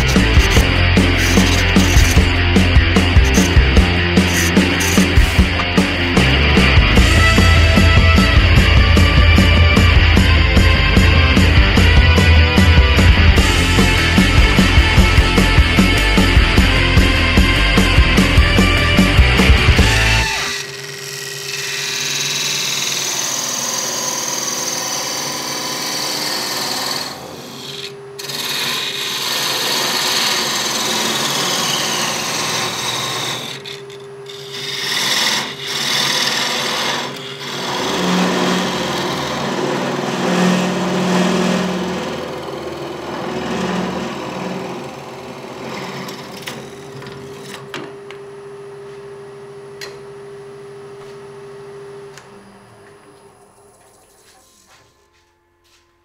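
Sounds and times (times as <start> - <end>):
scraper cutting wood: 0.0 - 5.6, 25.3 - 42.0
lathe motor hum: 0.0 - 55.0.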